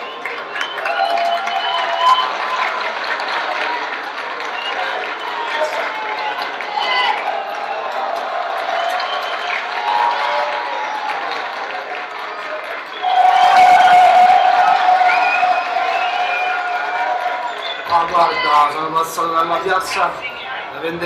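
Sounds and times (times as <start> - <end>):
crowd cheering and shouting: 0.0 - 21.0
crowd talking and calling out: 0.0 - 21.0.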